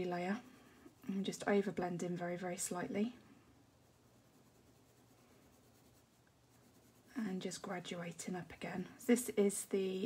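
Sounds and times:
pencil scratching on paper: 0:03.8 - 0:08.7.

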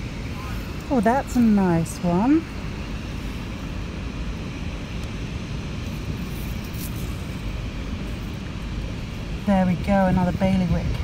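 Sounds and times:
low rumbling outdoor noise: 0:00.0 - 0:11.0.

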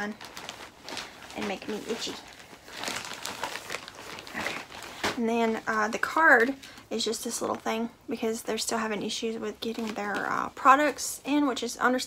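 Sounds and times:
bag crinkling and rustling: 0:00.0 - 0:06.9.

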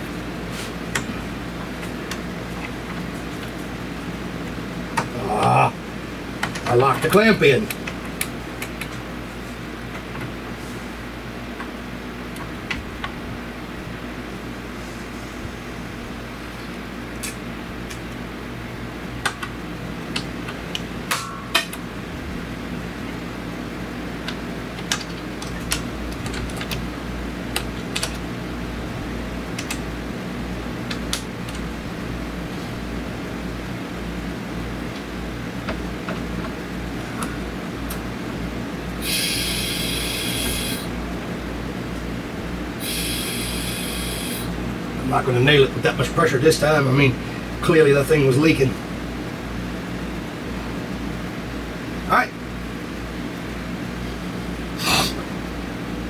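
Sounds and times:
low pulsing hum: 0:12.2 - 0:45.7
compressed air hissing: 0:39.0 - 0:40.9, 0:42.8 - 0:44.6.

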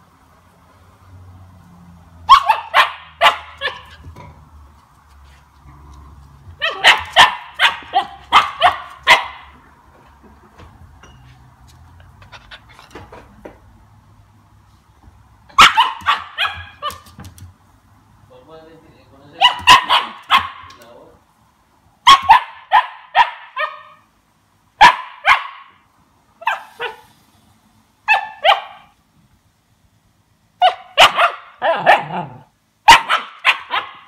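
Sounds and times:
puppy barking: 0:02.2 - 0:04.0, 0:06.6 - 0:09.6, 0:15.5 - 0:17.1, 0:19.4 - 0:20.8, 0:22.0 - 0:24.1, 0:24.8 - 0:25.8, 0:26.4 - 0:27.1, 0:28.0 - 0:29.0, 0:30.6 - 0:34.0.

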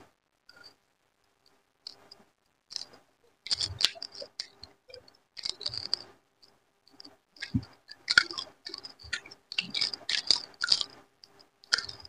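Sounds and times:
person chewing food: 0:02.7 - 0:06.1, 0:06.9 - 0:12.0.

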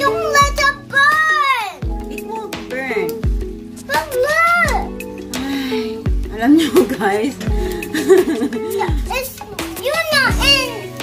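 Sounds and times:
background music with low beat: 0:00.0 - 0:11.0
child singing: 0:08.7 - 0:11.0.

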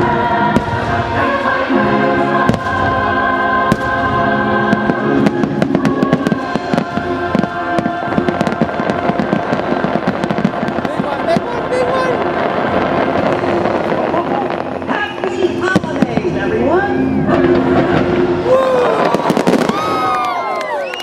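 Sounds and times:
music with a choir: 0:00.0 - 0:10.9, 0:17.2 - 0:18.5
fireworks bangs and crackles: 0:00.0 - 0:21.0.

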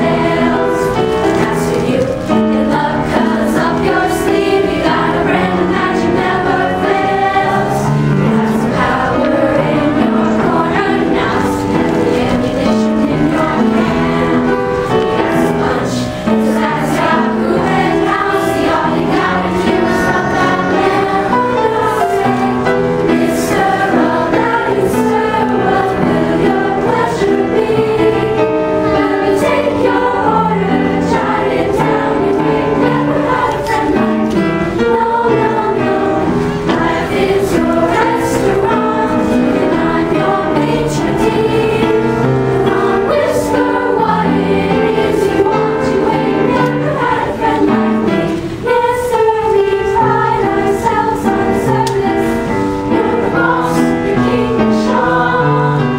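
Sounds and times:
children's choir singing: 0:00.0 - 0:55.9.

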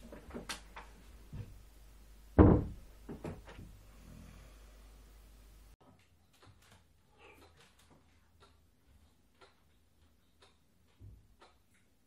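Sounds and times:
loud thump: 0:02.4 - 0:03.3.

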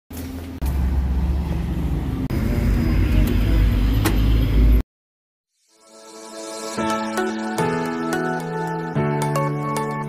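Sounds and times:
road traffic rumble: 0:00.1 - 0:04.8.

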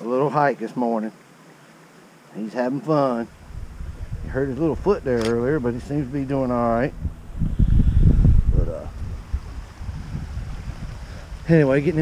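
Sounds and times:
wind buffeting microphone: 0:03.3 - 0:12.0.

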